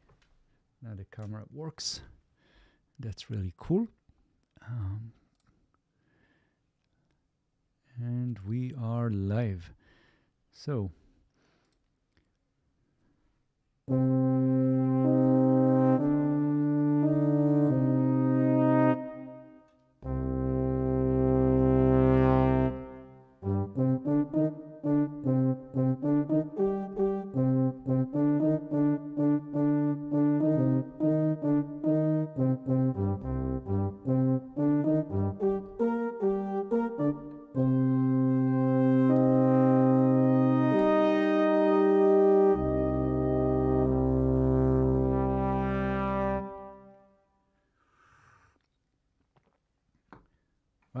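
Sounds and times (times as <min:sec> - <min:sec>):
brass ensemble playing: 0:13.9 - 0:47.1.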